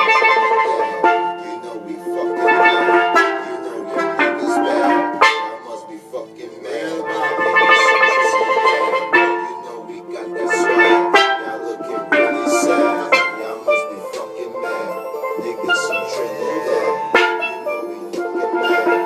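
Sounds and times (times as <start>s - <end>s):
steelpan struck with sticks: 2.3s - 5.8s, 10.4s - 19.0s.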